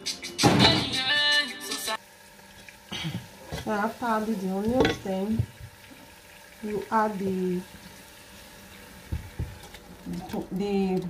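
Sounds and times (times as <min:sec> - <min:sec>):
onions sizzling in oil: 0:02.0 - 0:11.0.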